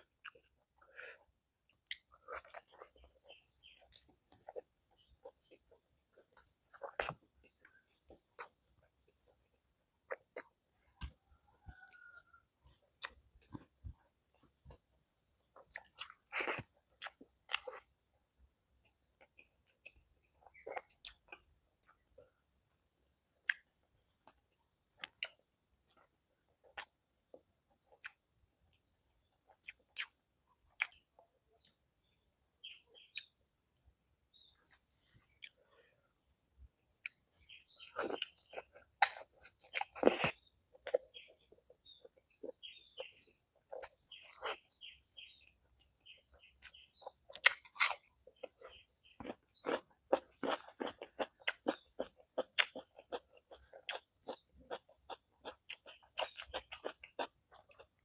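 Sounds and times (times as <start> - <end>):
chewing clicks: 46.6 - 58.0.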